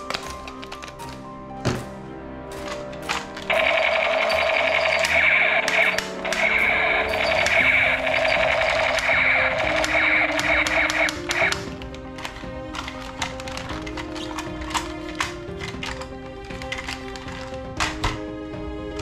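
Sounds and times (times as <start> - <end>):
background music: 0.0 - 19.0.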